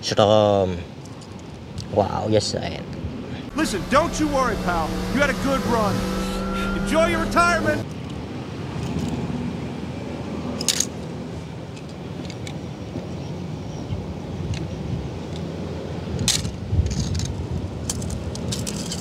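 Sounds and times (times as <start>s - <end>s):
metal toy cars clicking: 16.3s - 19.0s.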